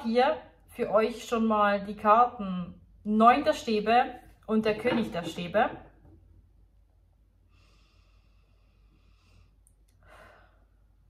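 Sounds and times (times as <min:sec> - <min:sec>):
faint breathing: 0:07.4 - 0:11.0.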